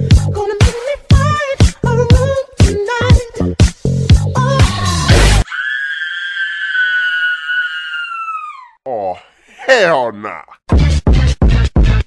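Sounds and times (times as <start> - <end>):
dance music mix: 0.0 - 5.4.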